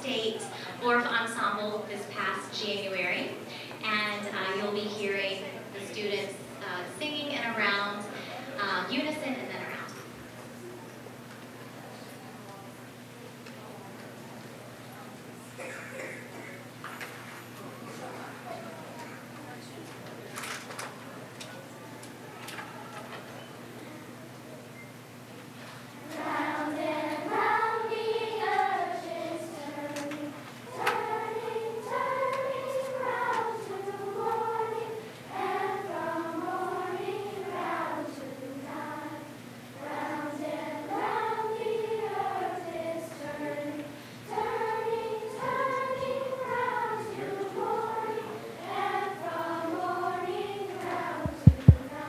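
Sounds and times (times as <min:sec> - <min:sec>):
children's chorus singing: 0:26.0 - 0:52.0
loud low thumps: 0:51.3 - 0:51.9.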